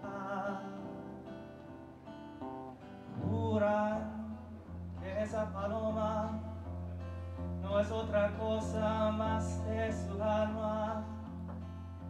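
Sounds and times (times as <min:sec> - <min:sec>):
man singing: 0:00.0 - 0:01.4, 0:03.1 - 0:11.4
acoustic guitar: 0:00.0 - 0:12.0.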